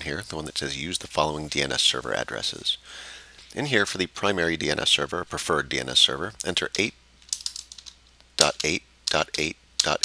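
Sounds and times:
keyboard typing: 7.3s - 9.2s.

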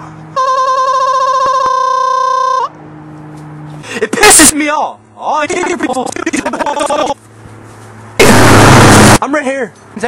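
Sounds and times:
electronic held tone: 8.2s - 9.2s.

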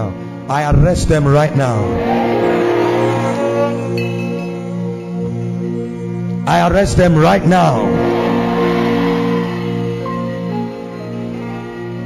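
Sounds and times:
music of slow sustained chords: 0.0s - 12.0s.

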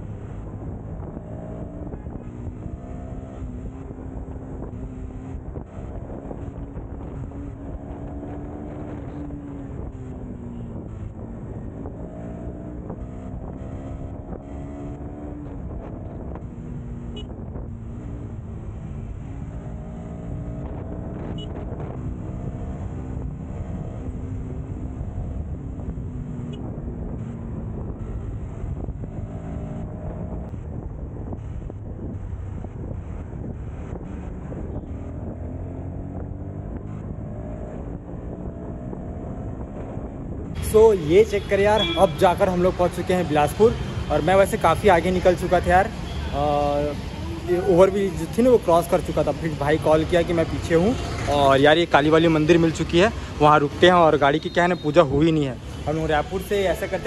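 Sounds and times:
motorcycle engine: 0.0s - 57.0s
road and wind noise: 0.0s - 57.0s.

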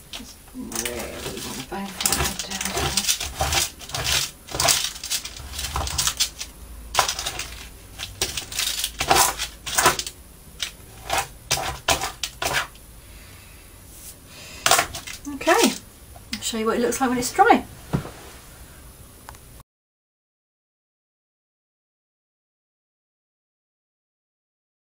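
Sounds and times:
bone folder scraping paper: 0.8s - 12.8s.

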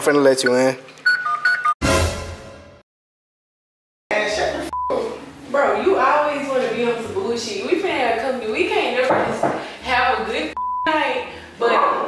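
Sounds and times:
smartphone beeps: 0.4s - 1.8s, 10.6s - 10.9s.

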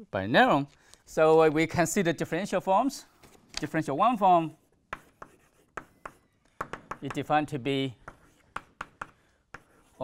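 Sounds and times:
chalk writing on chalkboard: 4.4s - 10.0s.

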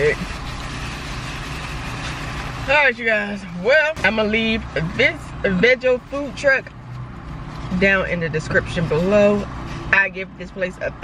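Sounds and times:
car interior rumble and hiss: 0.0s - 11.0s.

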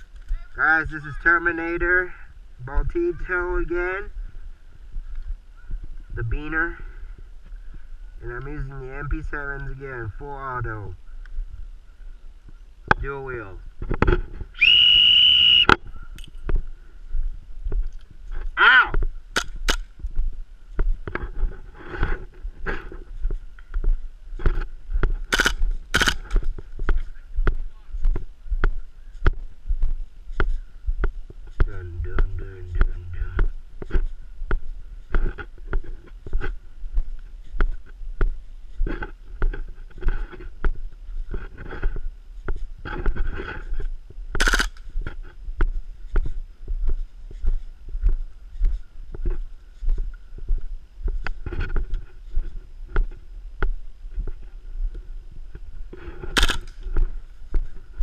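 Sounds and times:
footsteps on dirt and gravel: 0.0s - 58.0s
whistle blown: 14.6s - 15.8s.

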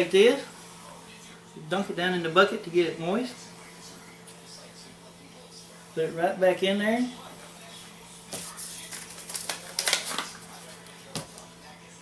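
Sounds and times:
paper packet rustling: 8.3s - 11.5s.

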